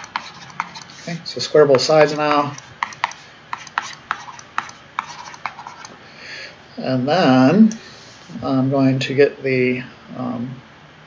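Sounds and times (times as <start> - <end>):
stylus tapping on tablet screen: 2.5 - 5.9.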